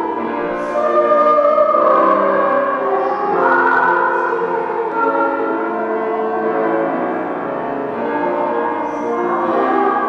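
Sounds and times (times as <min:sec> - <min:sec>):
church organ chords: 0:00.0 - 0:10.0.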